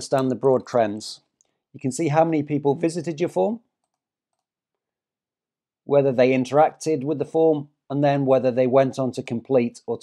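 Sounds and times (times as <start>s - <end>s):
narrator speaking: 0.0s - 3.8s, 5.8s - 10.0s.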